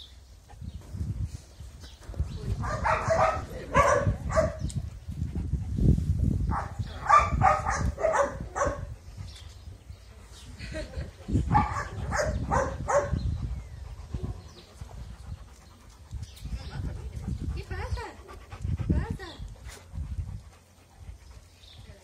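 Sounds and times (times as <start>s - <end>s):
dogs barking: 2.6s - 4.6s, 6.5s - 8.9s, 11.4s - 13.2s.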